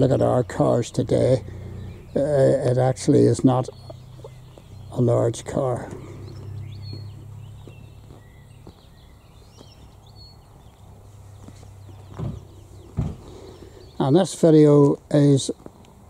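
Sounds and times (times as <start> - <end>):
faint bird chirps: 0.0 - 14.2
footsteps on tarmac: 3.5 - 16.0.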